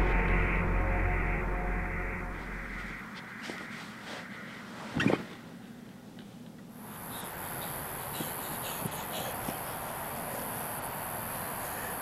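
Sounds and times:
eerie film score: 0.0 - 5.8
outdoor night ambience hiss: 0.0 - 12.0.

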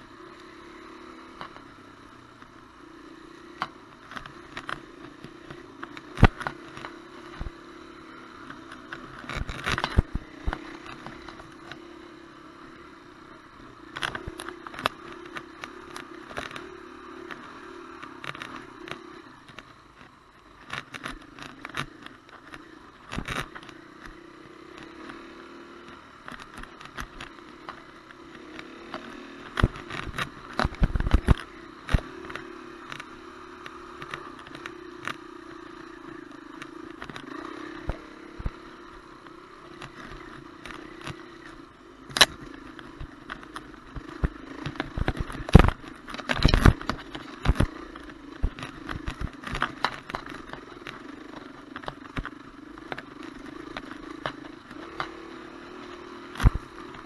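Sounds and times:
dirt bike engine running: 0.0 - 57.0
knocks and rattles over bumps: 8.4 - 11.8, 25.8 - 57.0.

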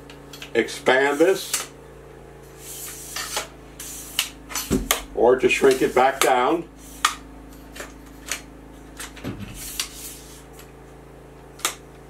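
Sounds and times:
tripod legs sliding with hissing rub: 0.9 - 1.7, 2.4 - 4.8, 5.5 - 8.4, 9.5 - 10.7.

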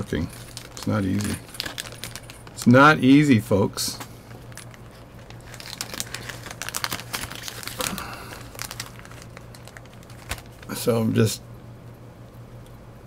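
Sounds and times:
plastic bag crinkling: 0.0 - 2.8, 4.3 - 11.0.

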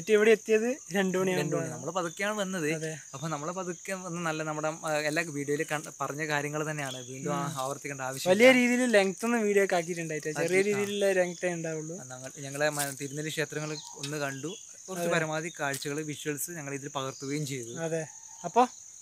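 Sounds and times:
men talking: 0.0 - 18.7
high-pitched insect drone: 0.0 - 19.0.

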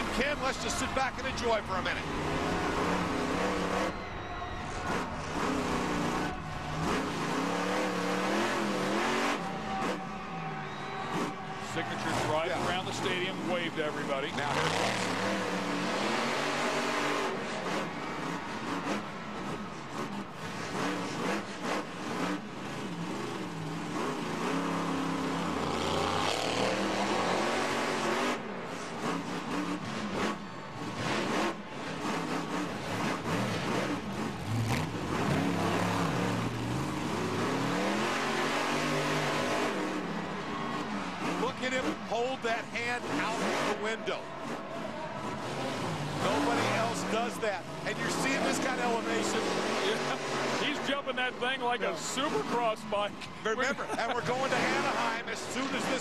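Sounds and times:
monster truck engine revving: 0.0 - 56.0.

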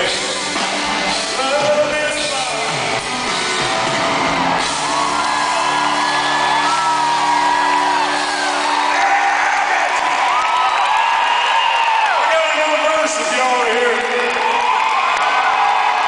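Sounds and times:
live country band: 0.0 - 10.5, 11.7 - 16.0
crowd whooping and yelling: 0.0 - 16.0.

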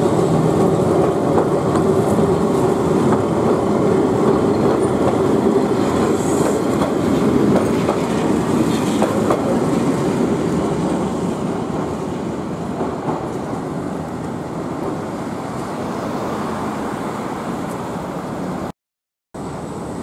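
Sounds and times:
train passing: 0.0 - 18.7, 19.4 - 20.0
wheels clicking over rail joints: 0.1 - 10.3.

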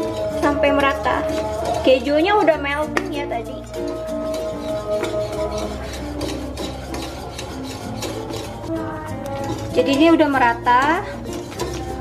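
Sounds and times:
background music: 0.0 - 12.0
whisk scraping metal saucepan: 0.0 - 12.0.

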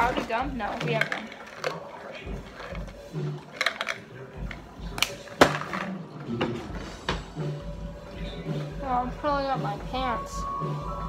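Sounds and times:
handling clicks and knocks: 0.0 - 7.2
faint music: 0.0 - 11.0.

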